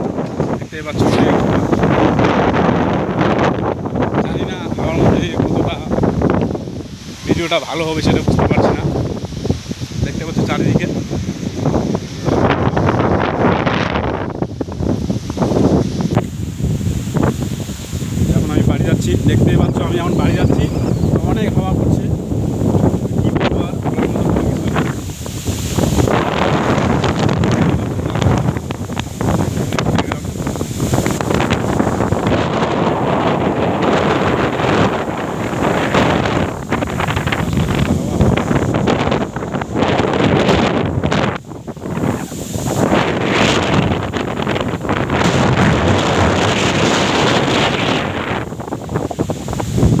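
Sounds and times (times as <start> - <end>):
wind buffeting microphone: 0.0 - 50.0.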